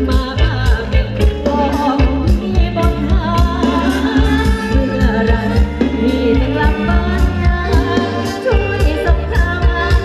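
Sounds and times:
steady drum beat: 0:00.0 - 0:10.0.

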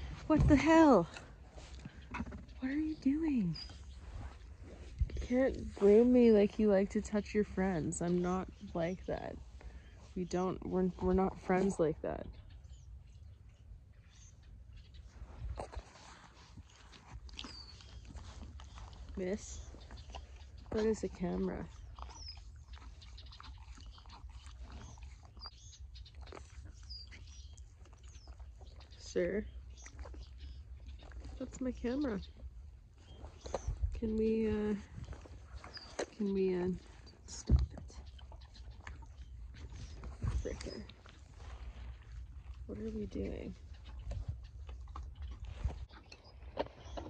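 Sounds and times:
horses nibbling and rustling: 0:00.0 - 0:47.0.

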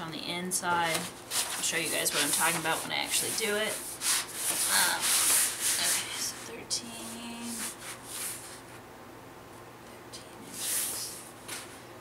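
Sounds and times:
cloth rubbing on board: 0:01.2 - 0:08.8, 0:10.5 - 0:11.8.

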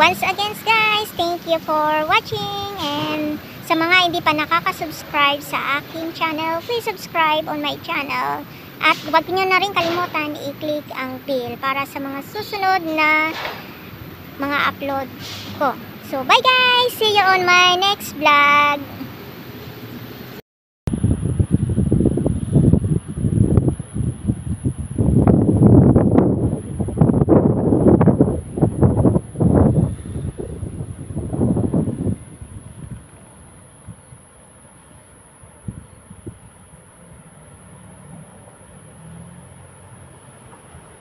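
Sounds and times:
wind buffeting microphone: 0:00.0 - 0:18.0, 0:20.9 - 0:34.4, 0:35.4 - 0:37.2.

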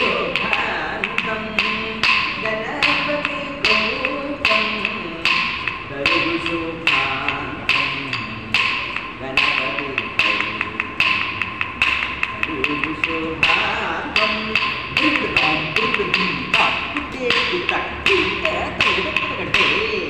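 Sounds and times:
person singing melody: 0:00.0 - 0:20.0
sharp percussion strokes: 0:00.0 - 0:20.0.

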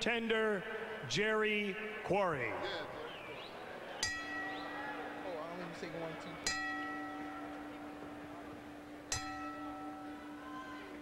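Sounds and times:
boxing ring bell ringing: 0:04.0 - 0:08.0, 0:09.1 - 0:11.0.

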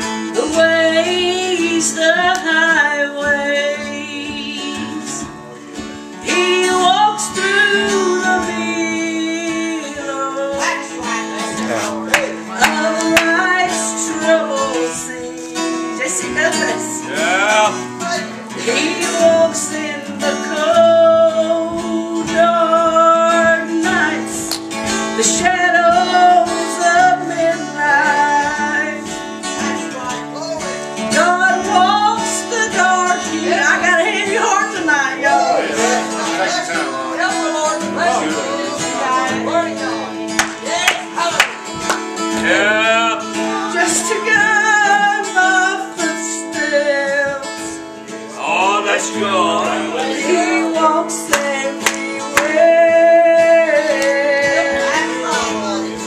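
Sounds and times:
strummed acoustic guitar: 0:00.0 - 0:56.0
woman singing gospel song: 0:00.0 - 0:56.0.

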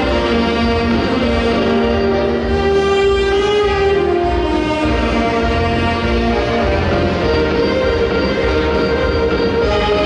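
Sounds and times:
saxophone ensemble sustained chords: 0:00.0 - 0:10.0.

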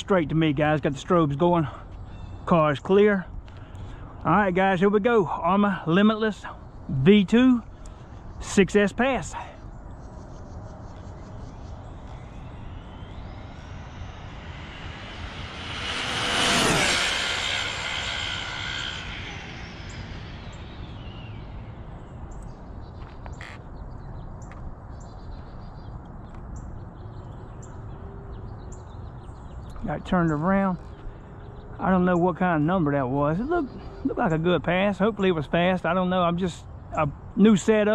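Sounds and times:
rc car motor whine passing: 0:10.0 - 0:23.6.

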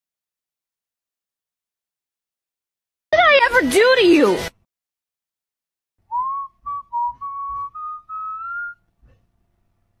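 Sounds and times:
person whistling a tune: 0:06.1 - 0:08.9.

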